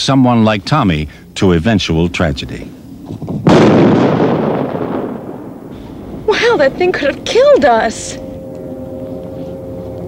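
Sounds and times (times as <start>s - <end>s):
loud explosion with rumble: 3.4s - 7.1s.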